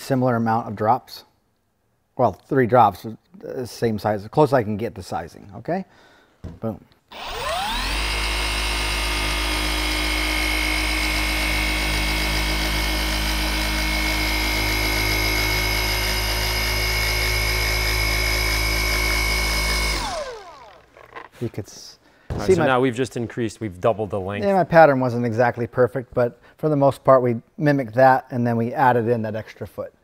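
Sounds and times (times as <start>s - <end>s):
orbital polisher whining: 7.1s - 21.3s.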